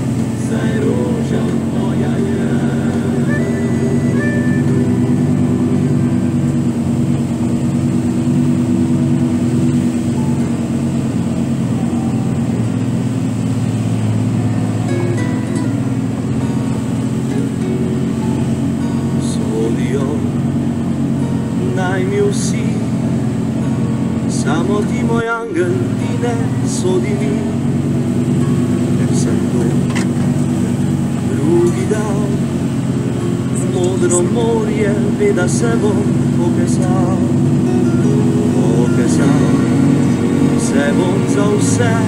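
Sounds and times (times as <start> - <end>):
heavy truck engine droning: 0.0 - 42.0
slow song with low tones: 0.0 - 42.0.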